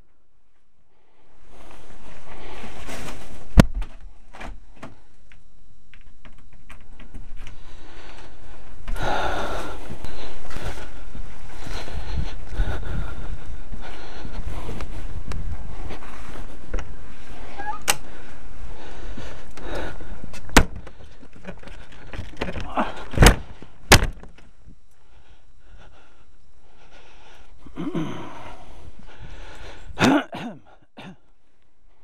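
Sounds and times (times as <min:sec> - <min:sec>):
rustling and scuffing: 0:01.4 - 0:04.6, 0:13.7 - 0:17.6.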